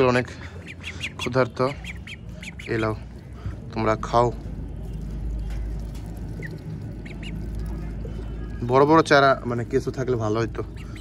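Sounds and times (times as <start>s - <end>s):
steady low rumble: 0.0s - 11.0s
ducklings peeping: 0.1s - 3.2s, 5.8s - 7.8s, 10.2s - 11.0s.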